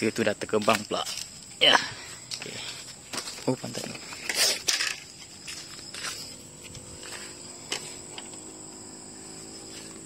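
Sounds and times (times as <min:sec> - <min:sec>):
high-pitched insect chirring: 0:00.0 - 0:10.0.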